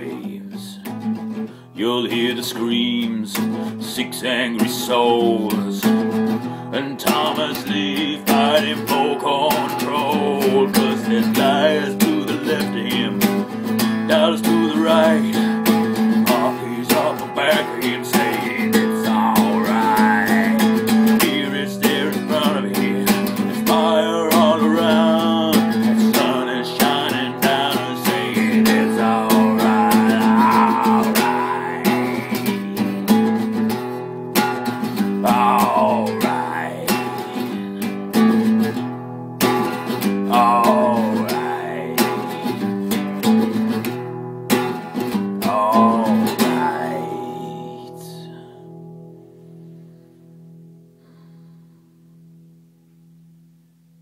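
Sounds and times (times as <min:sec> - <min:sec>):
acoustic guitar strumming: 0:00.0 - 0:51.2
sliding lead guitar melody: 0:02.9 - 0:49.7.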